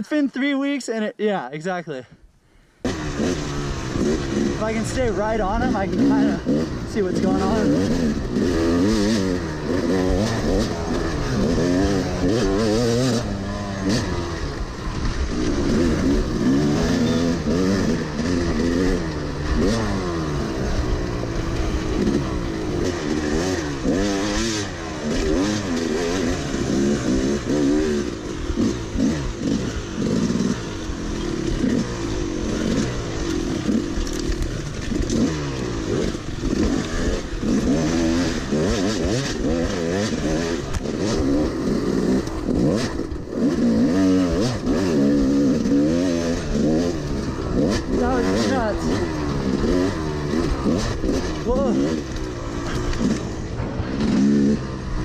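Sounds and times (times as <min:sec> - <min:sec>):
dirt bike engine revving: 0:02.8 - 0:55.0.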